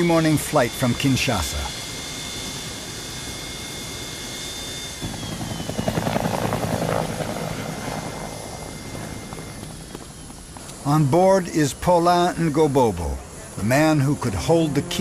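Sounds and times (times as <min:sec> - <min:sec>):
aircraft engine rush: 0:00.0 - 0:15.0
high engine whine: 0:00.0 - 0:15.0.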